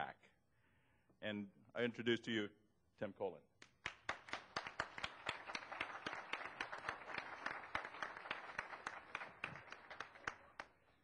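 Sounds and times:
audience applauding: 3.8s - 10.8s.

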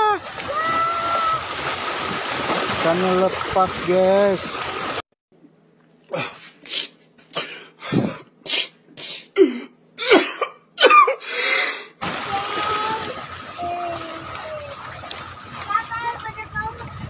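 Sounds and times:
sea water washing: 0.0s - 5.0s, 12.0s - 17.0s.

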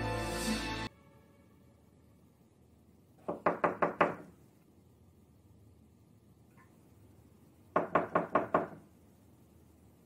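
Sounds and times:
knocking on a door: 3.2s - 4.3s, 7.8s - 8.8s.

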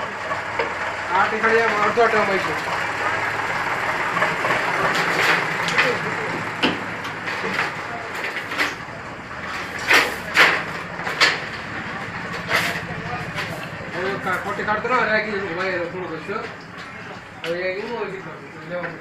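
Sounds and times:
fence machine humming: 0.0s - 19.0s.

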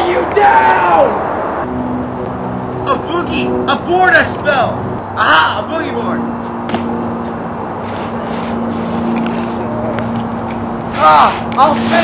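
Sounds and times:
steady low hum: 1.0s - 12.0s
constant hiss: 7.7s - 12.0s.

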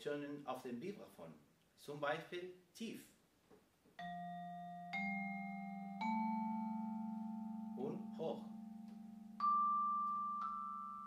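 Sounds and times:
vibraphone low notes: 4.0s - 11.0s.

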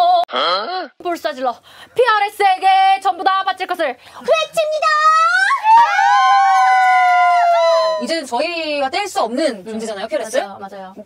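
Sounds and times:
young women cheering: 5.0s - 8.3s.

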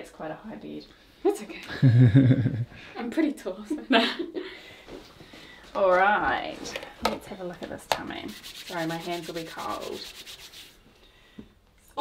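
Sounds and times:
palms rubbing together: 7.9s - 10.8s.

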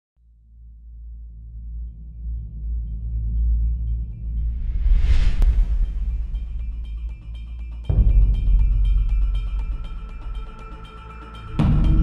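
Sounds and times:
low rumble: 3.6s - 9.4s
whoosh: 4.2s - 7.5s.

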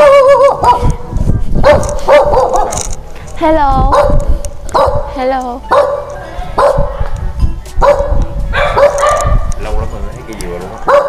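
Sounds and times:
dog barking: 0.4s - 1.0s, 1.6s - 2.8s, 3.9s - 5.1s, 5.7s - 7.0s, 7.8s - 9.5s.

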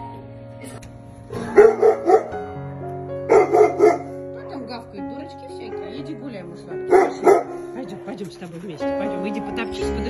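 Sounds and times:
background music: 0.0s - 10.0s
dog barking: 1.4s - 2.4s, 3.3s - 4.2s, 6.9s - 7.6s.

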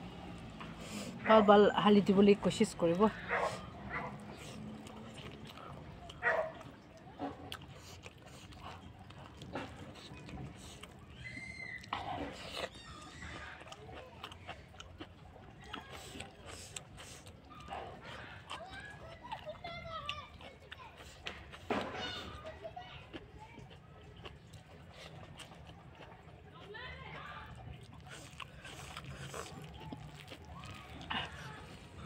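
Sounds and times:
person chewing food: 0.0s - 1.3s, 2.1s - 32.0s.

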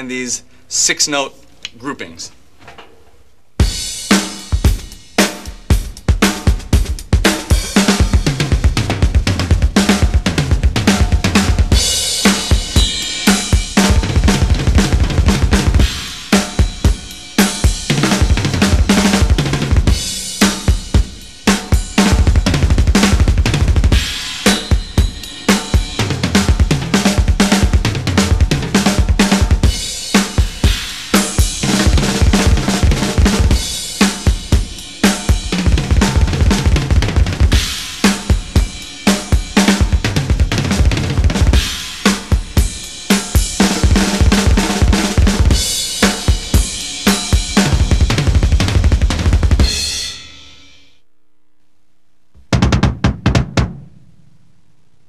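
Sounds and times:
double bass drum notes: 17.9s - 30.8s, 52.4s - 54.6s
snare and toms: 52.4s - 54.2s.

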